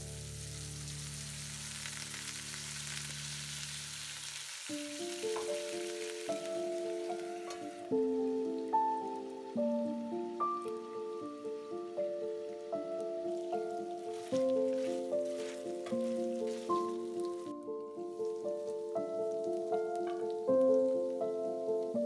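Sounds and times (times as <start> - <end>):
chicken sizzling in frying pan: 0.0 - 21.9
background music: 4.7 - 22.0.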